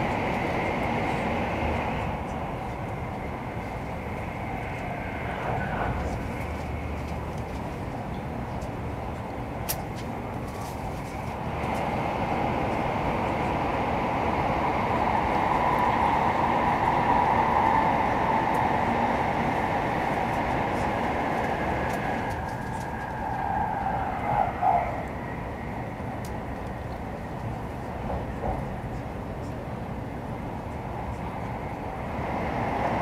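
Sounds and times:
train running noise inside car: 0.0s - 33.0s.

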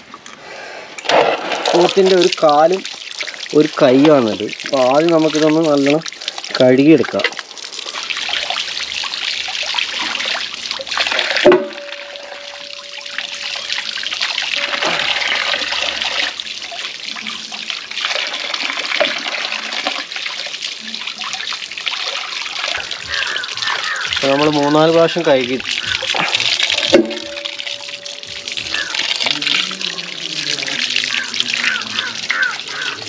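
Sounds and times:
tap water splashing into metal bowl: 1.0s - 20.3s, 21.0s - 30.0s
meat being rinsed by hand: 1.0s - 33.0s
ringing tone: 11.4s - 16.0s, 26.8s - 29.6s.

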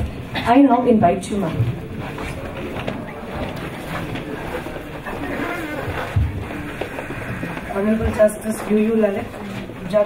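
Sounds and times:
faint murmuring voices: 0.0s - 10.0s.

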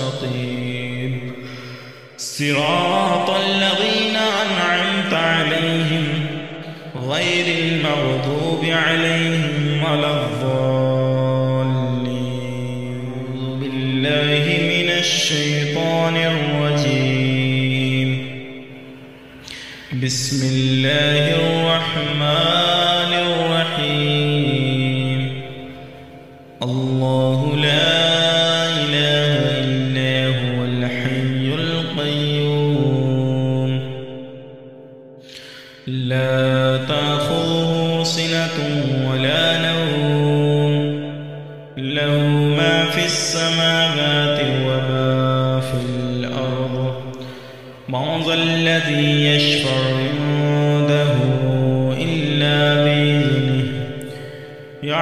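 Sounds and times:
man chanting melodically: 0.0s - 55.0s.

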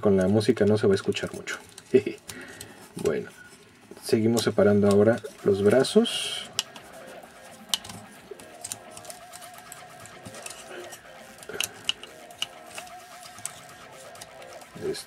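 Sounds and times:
faint background music: 0.0s - 15.0s.

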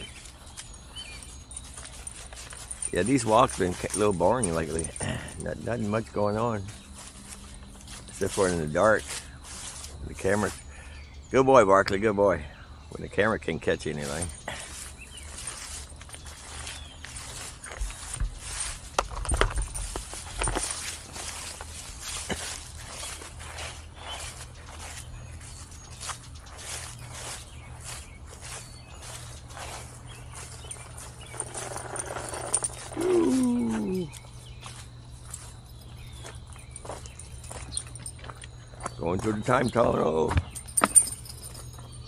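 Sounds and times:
footsteps in dry leaves: 0.0s - 11.0s, 13.8s - 42.0s.

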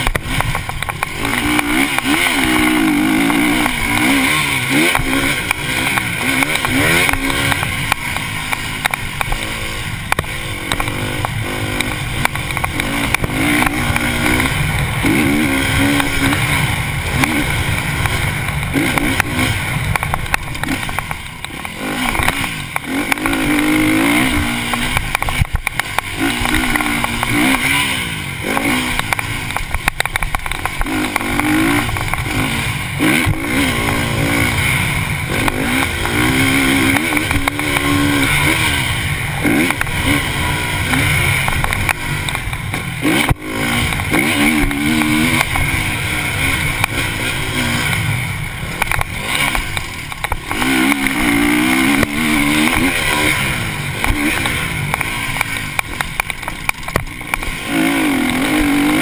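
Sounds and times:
motocross bike engine revving: 0.0s - 59.0s.

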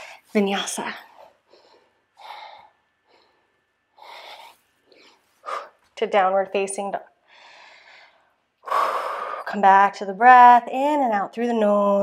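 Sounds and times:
woman breathing hard: 1.3s - 5.9s, 7.2s - 9.5s.

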